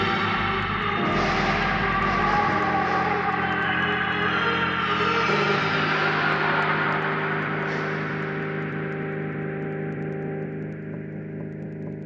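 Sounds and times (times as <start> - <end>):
low bass note: 0.0 - 5.8
sustained synth chords: 0.0 - 12.0.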